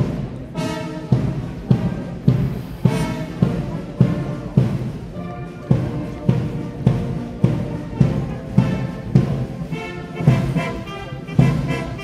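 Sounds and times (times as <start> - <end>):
brass instruments playing tune: 0.0 - 12.0
marching band playing: 0.0 - 12.0.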